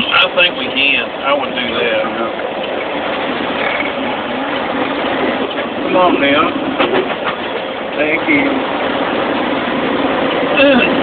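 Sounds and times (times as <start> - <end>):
diesel truck engine and road noise: 0.0 - 11.0.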